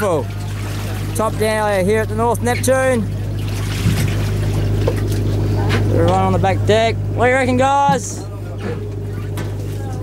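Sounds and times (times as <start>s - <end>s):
boat engine drone: 0.0s - 10.0s.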